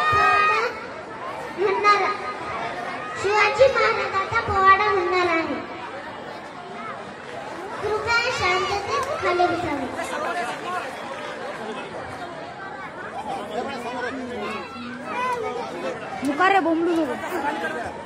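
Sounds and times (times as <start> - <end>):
crowd chatter: 0.0 - 18.0.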